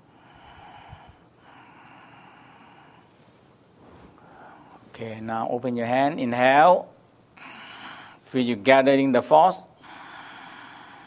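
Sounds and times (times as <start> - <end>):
slow nasal breathing: 0.0 - 4.9, 7.4 - 8.3, 9.8 - 11.0.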